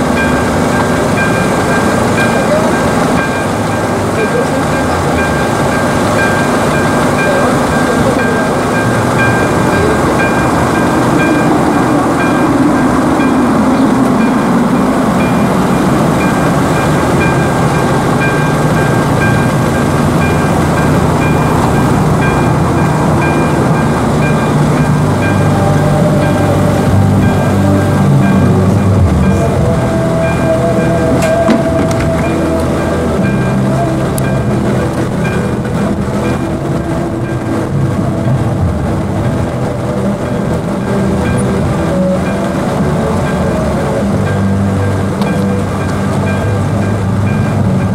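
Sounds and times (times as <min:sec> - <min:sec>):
level-crossing bell ringing: 0:00.0 - 0:47.9
loud rumbling noise: 0:00.0 - 0:47.9
low droning hum: 0:00.0 - 0:47.9.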